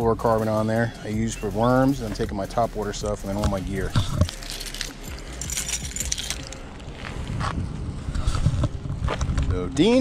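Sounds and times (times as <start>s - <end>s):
gear clicks and rattles: 1.8s - 6.7s.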